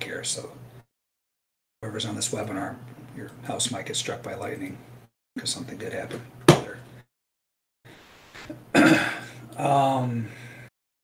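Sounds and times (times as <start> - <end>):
man clearing his throat: 8.7 - 9.4.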